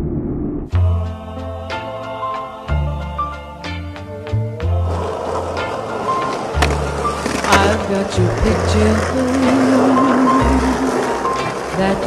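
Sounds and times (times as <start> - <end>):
slow ballad with bass and guitar: 0.7 - 12.0
skateboard wheels rolling on asphalt: 4.8 - 12.0
skateboard clacks: 4.9 - 12.0.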